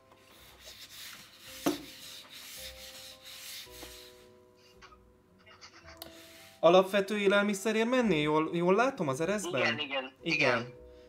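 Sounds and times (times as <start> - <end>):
pipe rubbing on blanket: 0.3 - 4.4.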